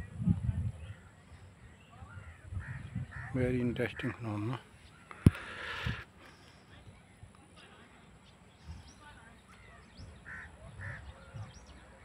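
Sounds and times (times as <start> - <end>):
faint outdoor ambience: 0.0 - 12.0
distant bird calls: 0.7 - 12.0.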